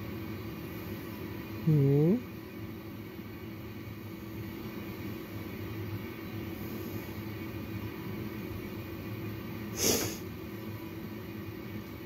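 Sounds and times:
medical equipment hum and hiss: 0.0s - 12.0s.

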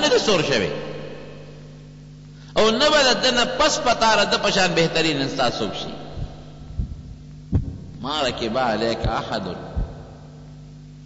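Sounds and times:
steady low hum: 0.0s - 11.0s
soft low thumps: 6.0s - 8.2s, 9.0s - 10.6s.

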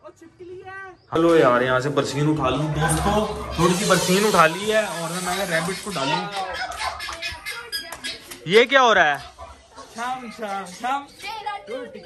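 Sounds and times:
man talking: 1.2s - 6.6s.

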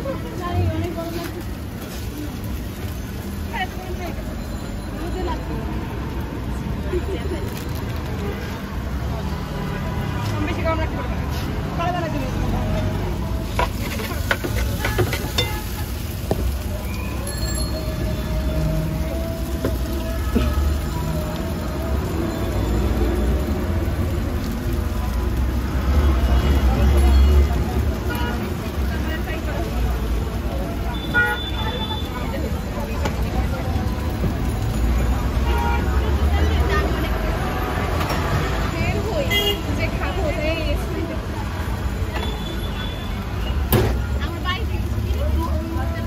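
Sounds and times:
rumble of passing vehicles: 0.0s - 46.0s
background voices: 4.9s - 31.0s.

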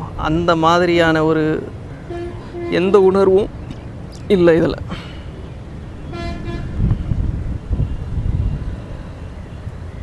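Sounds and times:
road traffic rumble: 0.0s - 10.0s
vehicle horn toot: 2.0s - 3.1s, 6.0s - 6.9s.

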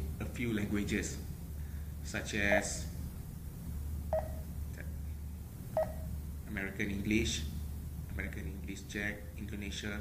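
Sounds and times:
touchscreen key beeps: 4.2s - 4.4s, 5.8s - 6.1s.

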